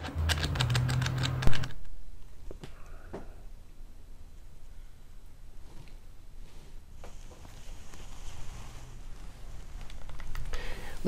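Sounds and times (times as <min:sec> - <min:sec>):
fast sharp clicks: 0:00.0 - 0:01.9.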